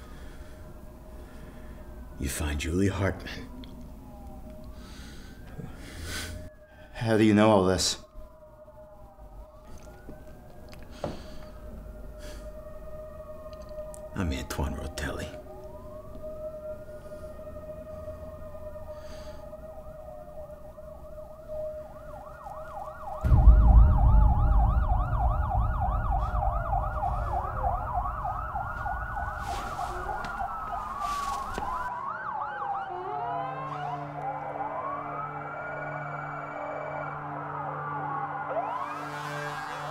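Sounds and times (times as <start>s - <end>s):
police sirens wailing: 0.0s - 39.9s
loud deep rumble: 23.2s - 31.0s
steady low tones: 23.2s - 31.0s.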